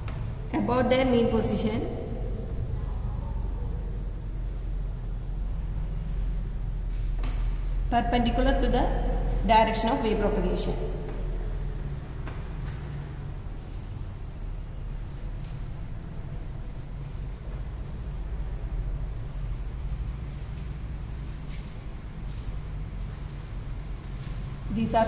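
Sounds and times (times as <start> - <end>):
insects chirring: 0.0 - 25.0
low steady hum: 0.0 - 25.0.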